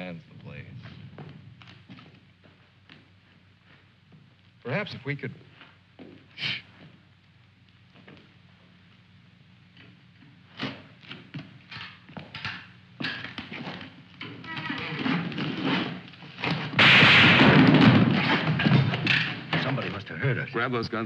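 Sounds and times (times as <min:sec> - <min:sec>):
gunfire burst: 0:16.8 - 0:18.7.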